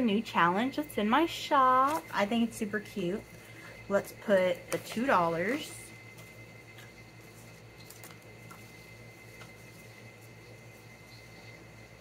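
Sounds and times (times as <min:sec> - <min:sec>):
low electrical hum: 0:00.0 - 0:12.0
paper and plastic rustling: 0:01.8 - 0:02.5, 0:04.5 - 0:10.9.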